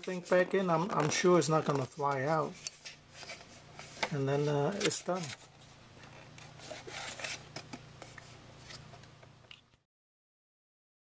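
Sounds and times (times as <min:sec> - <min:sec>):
low steady hum: 0:00.0 - 0:09.8.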